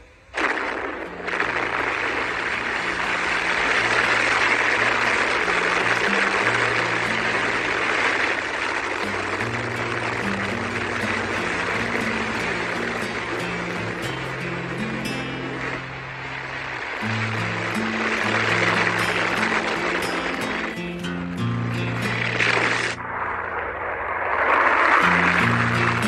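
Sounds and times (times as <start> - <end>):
low held music notes: 1.1 - 23.9
rocket roaring at liftoff: 22.5 - 25.9.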